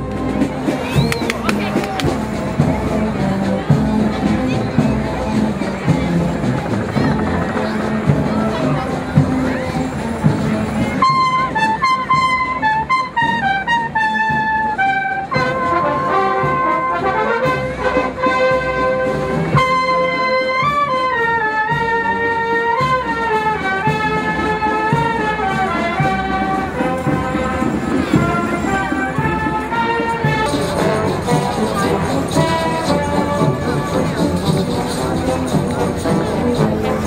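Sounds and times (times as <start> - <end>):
marching brass band playing: 0.0 - 37.0.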